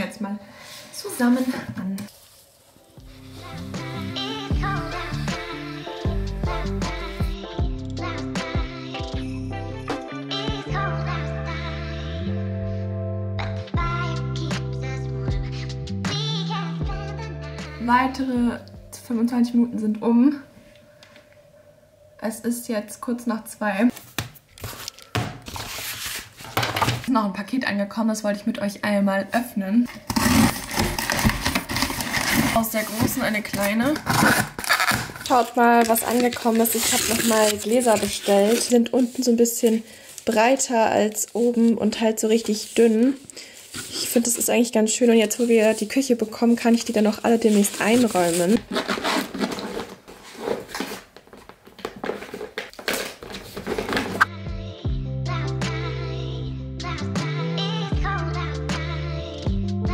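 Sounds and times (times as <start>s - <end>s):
hands rummaging in a bag: 29.9s - 54.3s.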